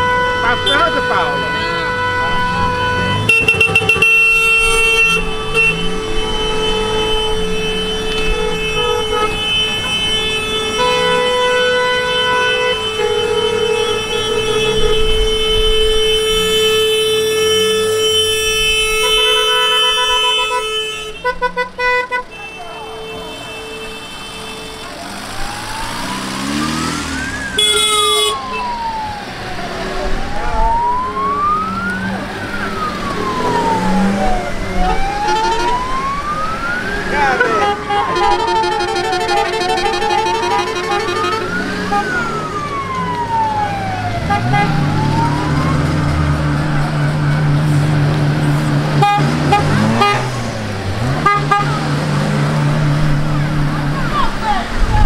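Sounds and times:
car horns honking: 0.0 - 29.0, 30.6 - 55.0
wailing siren-style horn: 0.0 - 55.0.

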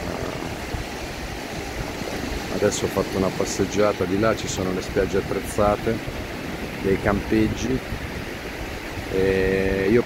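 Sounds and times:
small waves breaking on shore: 0.0 - 10.0
wind buffeting microphone: 0.0 - 10.0.

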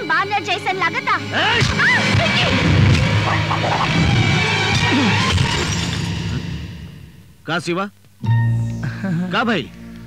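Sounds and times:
film background music: 0.0 - 7.3, 8.2 - 10.0
vase smashing on floor: 5.2 - 6.4.

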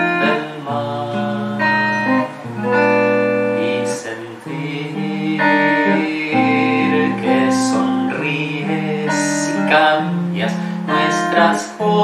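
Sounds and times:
electric guitar: 0.0 - 12.0
man singing: 0.0 - 12.0.

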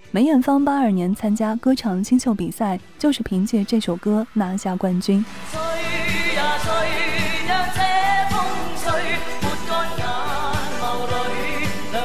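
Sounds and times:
women singing pop ballad: 5.2 - 12.0.

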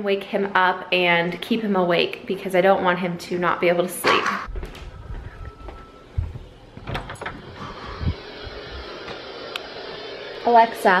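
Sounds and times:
footsteps and handling bumps: 4.1 - 7.6.

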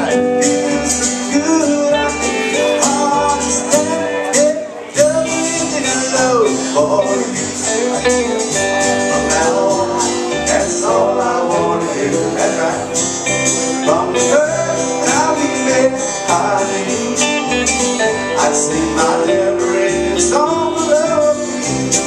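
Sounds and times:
live country band playing: 0.0 - 22.0.

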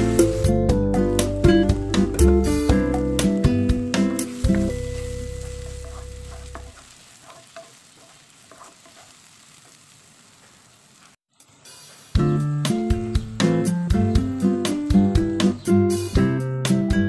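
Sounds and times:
vegetables sizzling in a pan: 0.0 - 16.1
wooden spatula scraping: 4.0 - 12.3.

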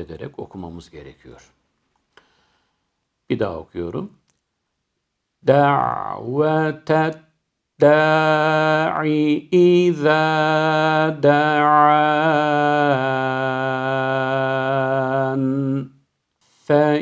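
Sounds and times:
man chanting melodically: 5.4 - 7.2, 7.8 - 15.9, 16.5 - 17.0.

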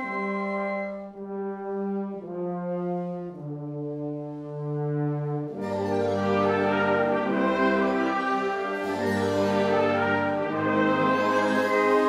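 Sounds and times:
wind band brass chords: 0.0 - 12.0.

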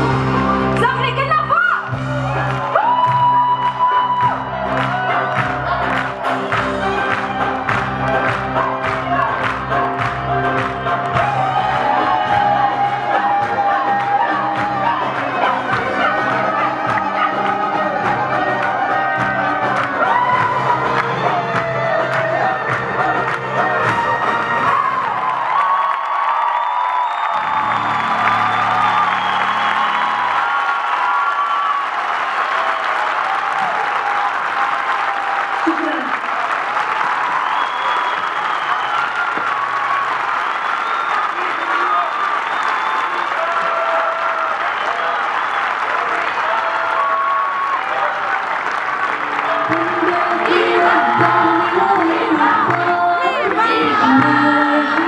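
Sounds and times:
live band music: 0.0 - 25.1
audience clapping and cheering: 0.0 - 55.0.

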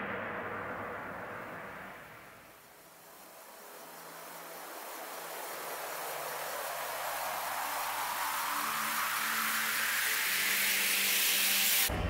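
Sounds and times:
synthesized white-noise riser: 0.0 - 12.0.

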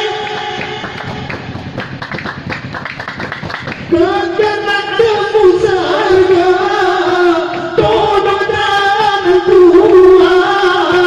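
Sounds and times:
fast rhythmic hand-clapping: 0.2 - 5.2.

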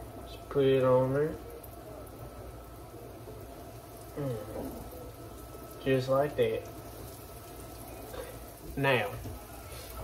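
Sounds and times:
meat sizzling in a skillet: 0.0 - 10.0.

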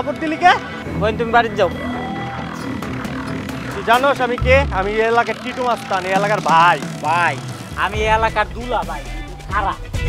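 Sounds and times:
background music: 0.0 - 10.0
man speaking: 3.8 - 9.8.

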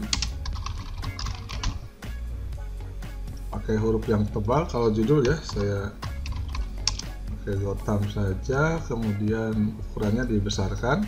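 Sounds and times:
computer keyboard keystrokes: 0.0 - 1.8, 5.2 - 7.1
soft background music: 0.0 - 11.0.

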